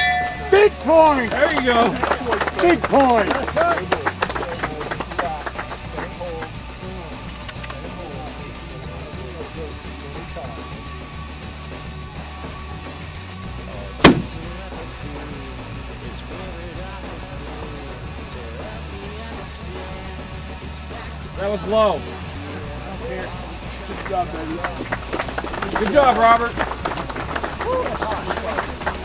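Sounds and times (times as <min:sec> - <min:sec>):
background music: 0:00.0 - 0:29.0
rifle shot crack with echo: 0:14.0 - 0:14.5.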